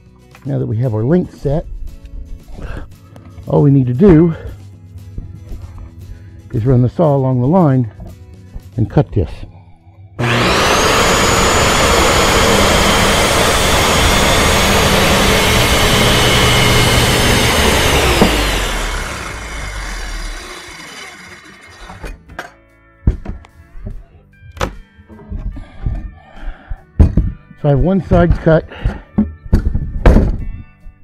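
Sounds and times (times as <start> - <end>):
circular saw cutting board: 10.2 - 22.2
knocks of board handled: 29.2 - 30.5.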